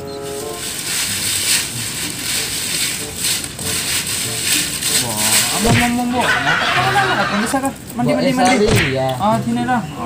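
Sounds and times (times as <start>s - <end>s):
rustling and crackling in basket: 0.0s - 9.3s.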